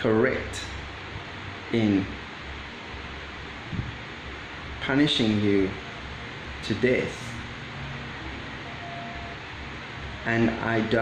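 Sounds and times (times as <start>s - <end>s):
electric fan hiss: 0.0s - 11.0s
road traffic noise: 0.0s - 11.0s.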